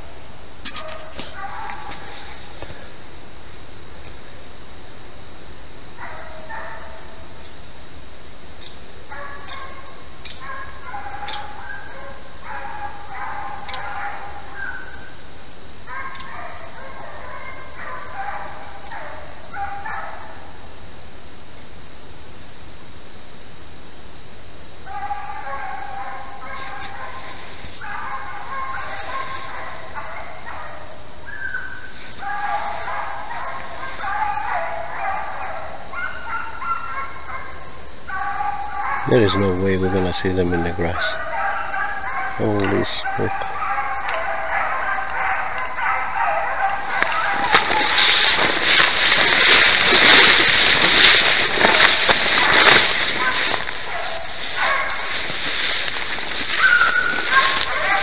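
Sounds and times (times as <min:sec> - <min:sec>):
pack of dogs baying: 0:00.0 - 0:02.8, 0:05.9 - 0:07.3, 0:09.0 - 0:20.8, 0:24.8 - 0:58.0.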